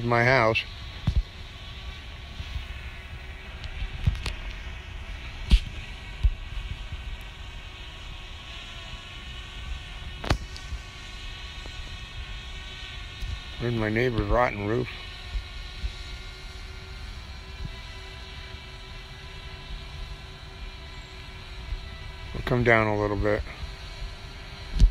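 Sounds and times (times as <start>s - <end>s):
drone propellers humming: 0.0s - 24.9s.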